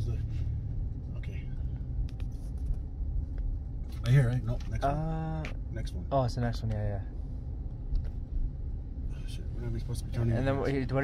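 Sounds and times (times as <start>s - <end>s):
pickup truck road and engine rumble: 0.0s - 11.0s.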